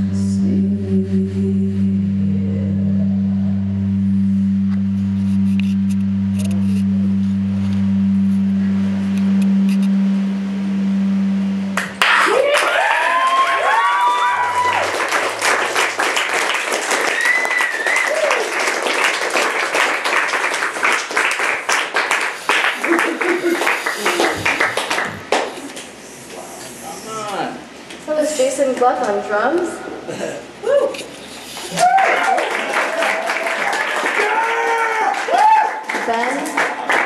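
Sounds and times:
band droning note: 0.0s - 18.2s
rising whoops: 11.8s - 16.2s, 16.8s - 18.7s, 30.6s - 35.9s
audience clapping and cheering: 11.8s - 25.8s, 31.6s - 37.0s.

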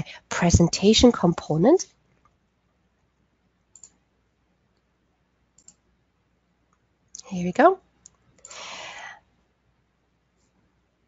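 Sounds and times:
faint computer mouse clicks: 3.7s - 4.0s, 5.6s - 5.8s.

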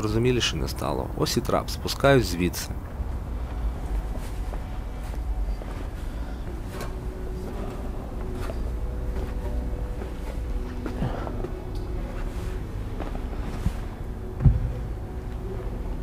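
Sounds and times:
steady low rumble: 0.0s - 16.0s
footsteps on gritty stairs: 2.8s - 16.0s.

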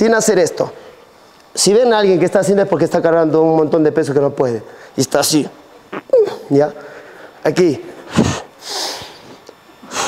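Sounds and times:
man breathing forcefully: 8.1s - 10.0s.

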